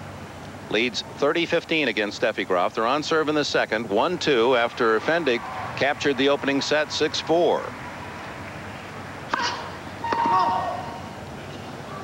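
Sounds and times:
crowd murmur: 4.4s - 12.0s
racket striking tennis ball: 9.3s - 11.0s.

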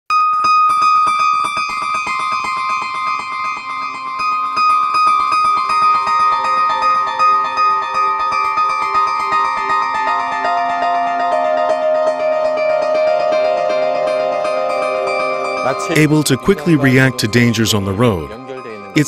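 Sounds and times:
held electronic keyboard tones: 5.7s - 19.0s.

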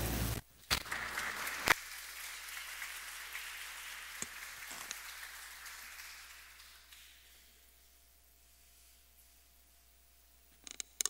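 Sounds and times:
audience applauding: 0.7s - 7.6s.

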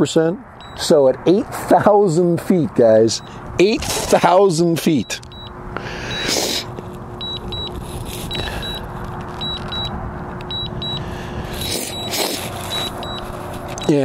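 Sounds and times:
high-pitched double beeps: 0.6s - 0.9s, 7.2s - 7.7s, 10.5s - 11.0s, 13.8s - 14.0s.

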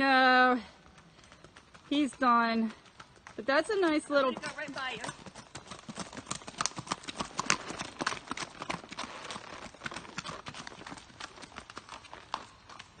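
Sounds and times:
horse hooves on gravel: 0.4s - 13.0s.

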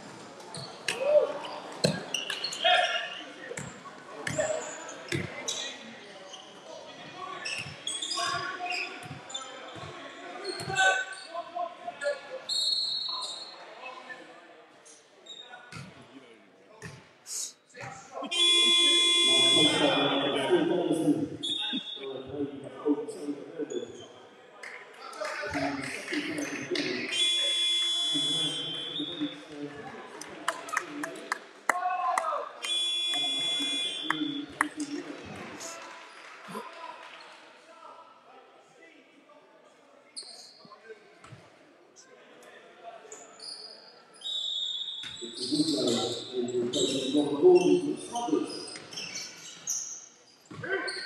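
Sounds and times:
scattered voices in a hall: 0.0s - 51.0s
basketball game buzzer: 18.4s - 19.8s.

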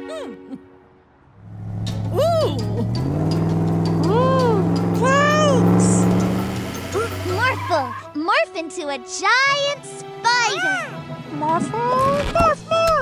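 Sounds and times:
cartoon engine rumble: 1.4s - 8.1s.

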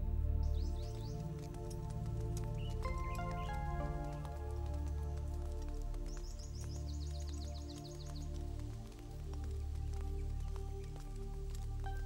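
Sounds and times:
slow background score: 0.0s - 12.0s
bird chirping: 0.3s - 12.0s.

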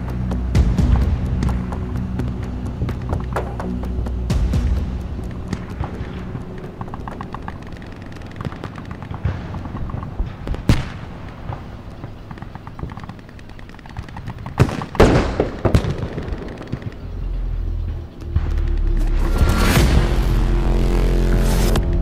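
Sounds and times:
gunshots: 6.8s - 17.2s.

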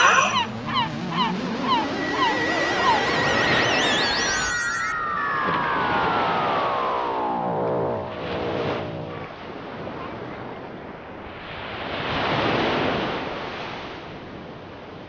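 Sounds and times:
electronic flying saucer effect: 0.0s - 7.7s.

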